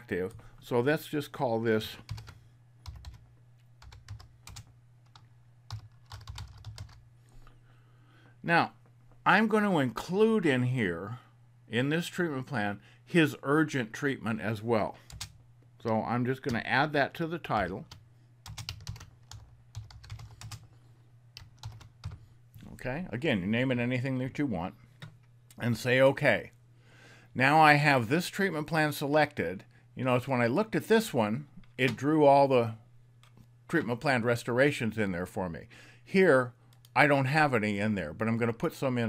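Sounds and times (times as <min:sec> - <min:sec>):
computer keyboard typing: 0:02.1 - 0:03.2, 0:03.8 - 0:07.0, 0:15.1 - 0:15.4, 0:17.9 - 0:20.7, 0:21.4 - 0:22.2.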